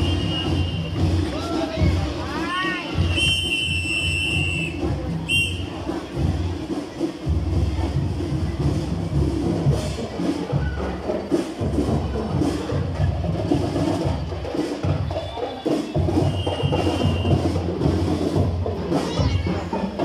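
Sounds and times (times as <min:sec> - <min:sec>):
whistle blasts: 0:00.0 - 0:01.1, 0:03.0 - 0:05.8, 0:15.1 - 0:17.6
loud pulsing drums: 0:00.0 - 0:20.0
marching band music: 0:00.0 - 0:20.0.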